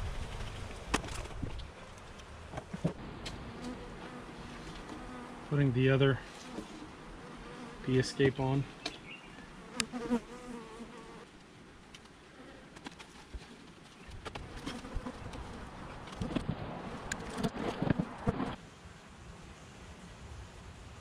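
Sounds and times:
wooden boxes knocking and scraping: 2.5s - 3.0s
bees buzzing: 3.3s - 11.3s, 14.3s - 18.6s.

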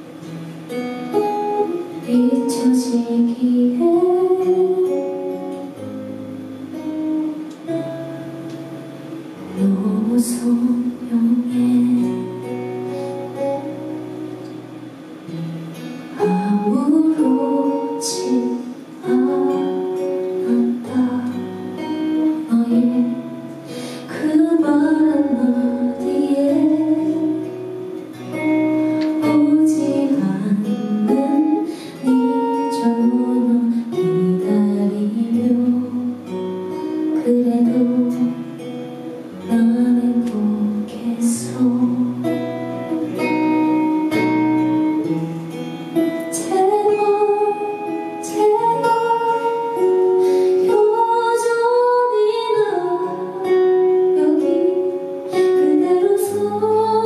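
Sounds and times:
acoustic guitar: 0.0s - 57.0s
woman singing into microphone: 1.1s - 5.8s, 9.4s - 14.1s, 16.2s - 43.9s, 46.2s - 57.0s.

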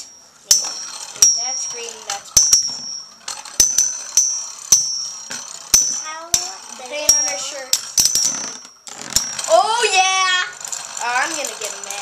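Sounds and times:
spinning tops clashing: 0.0s - 12.0s.

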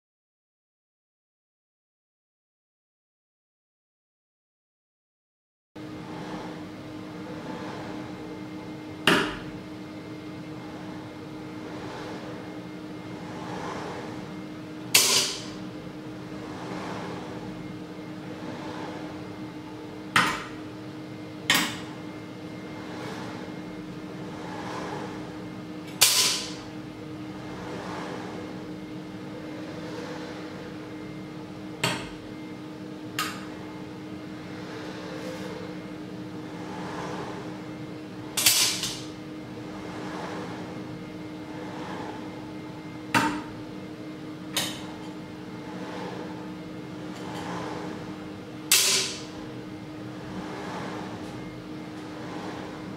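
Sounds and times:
steady electrical hum: 5.8s - 52.9s.

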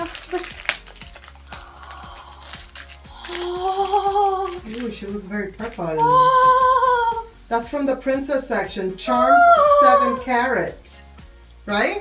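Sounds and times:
foil bag crinkling: 0.0s - 6.1s
quiet background music: 0.0s - 12.0s.

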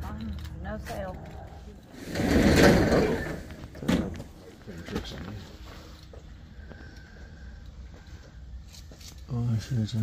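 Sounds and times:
metal roll-up door rattling: 2.0s - 4.2s.

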